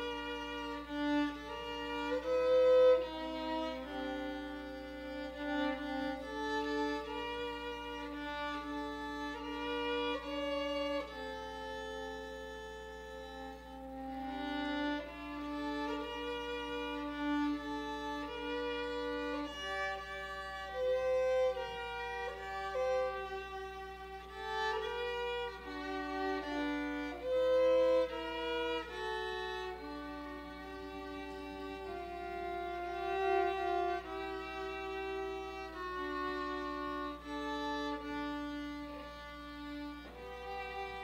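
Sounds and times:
violin duet: 0:00.0 - 0:41.0.

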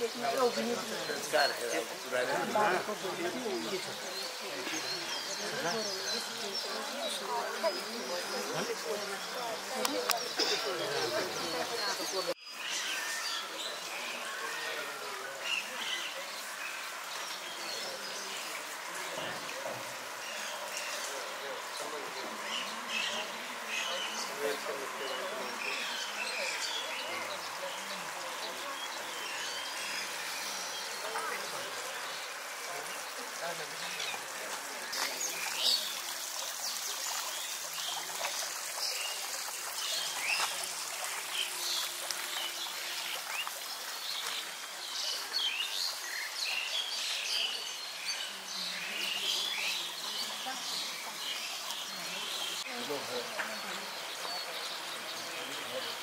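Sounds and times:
murmur of voices: 0:00.0 - 0:36.4, 0:47.0 - 0:56.0.

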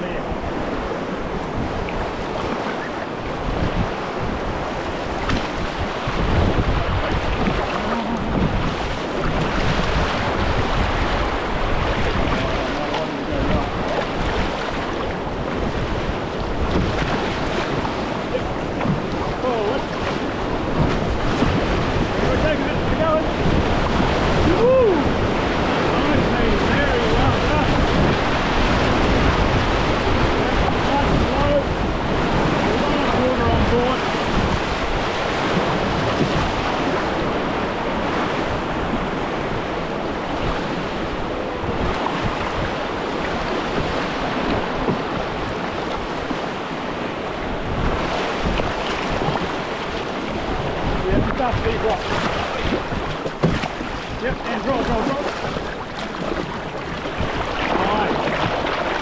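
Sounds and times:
whitewater rapids rushing: 0:00.0 - 0:59.0
wind buffeting microphone: 0:00.0 - 0:59.0.

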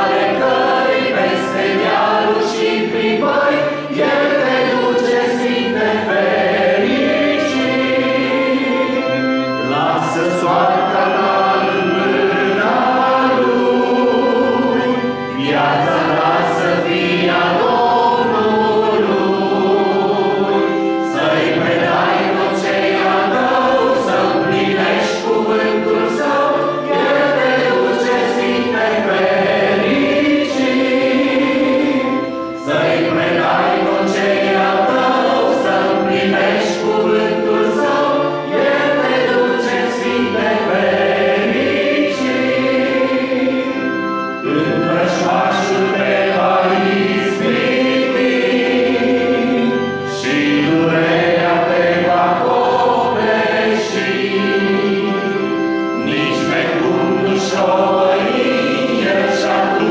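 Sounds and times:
congregation singing a hymn: 0:00.0 - 0:59.9.

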